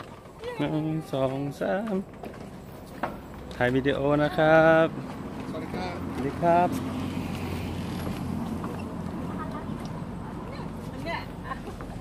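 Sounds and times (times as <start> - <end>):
low outdoor rumble: 0.0 - 12.0
man speaking a greeting: 0.6 - 2.1, 3.5 - 6.8.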